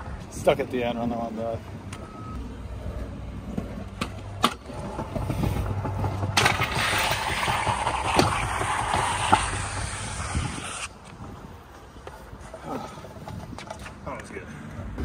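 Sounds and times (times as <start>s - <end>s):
scooter wheels rolling on pavement: 2.4s - 14.9s
scooter grinding on concrete ledge: 2.8s - 11.4s.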